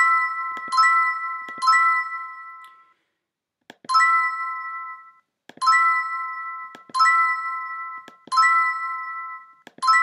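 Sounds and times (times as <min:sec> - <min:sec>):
bright bell-like chime: 0:04.0 - 0:10.0.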